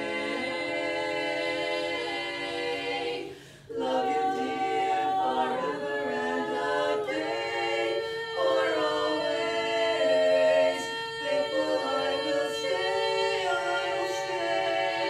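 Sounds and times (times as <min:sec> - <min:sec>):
women singing a cappella: 0:00.0 - 0:15.0.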